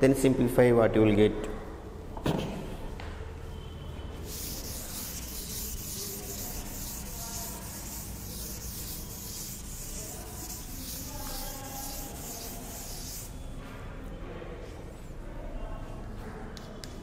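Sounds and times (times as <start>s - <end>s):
duster wiping chalkboard: 4.2s - 13.5s.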